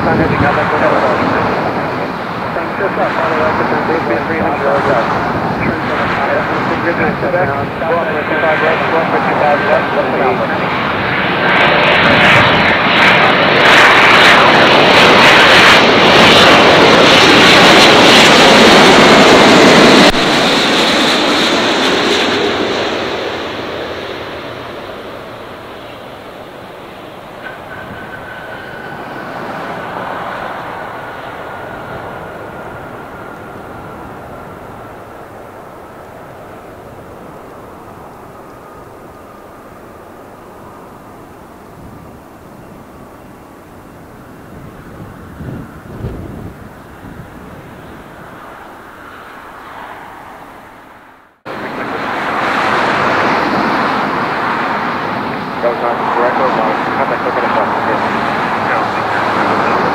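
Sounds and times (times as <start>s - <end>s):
jet airliner engines: 0.0s - 59.9s.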